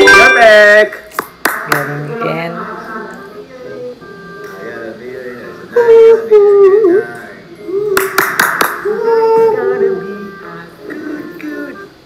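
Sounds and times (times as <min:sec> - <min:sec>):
sharp hand claps: 0:00.9 - 0:01.9, 0:08.0 - 0:08.8
voices: 0:01.7 - 0:12.0.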